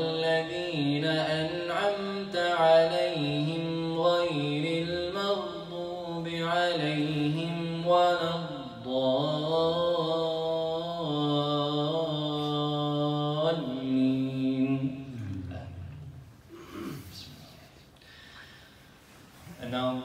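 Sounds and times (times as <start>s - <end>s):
man reciting melodically: 0.0s - 17.4s, 19.6s - 20.0s.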